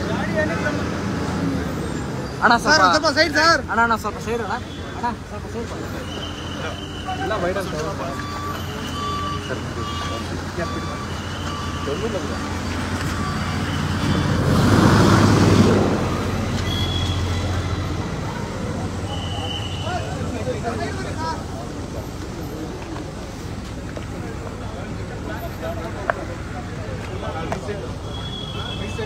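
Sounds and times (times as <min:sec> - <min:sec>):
traffic: 0:00.0 - 0:29.0
electronic warning beeps: 0:08.0 - 0:14.6
loud rushing noise: 0:12.5 - 0:20.3.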